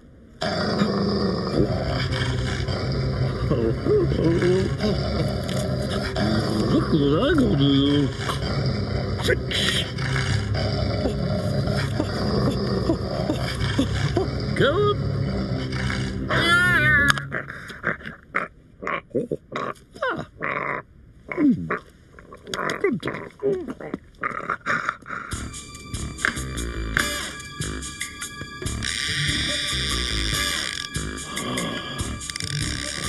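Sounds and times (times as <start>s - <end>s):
cartoon dog snarling growl: 0.4s - 21.8s
muttering: 0.4s - 25.5s, 28.8s - 33.0s.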